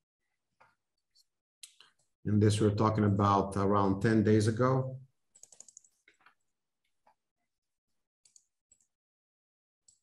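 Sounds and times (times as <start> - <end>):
computer keyboard clicking: 5.3 - 6.4, 8.3 - 8.9.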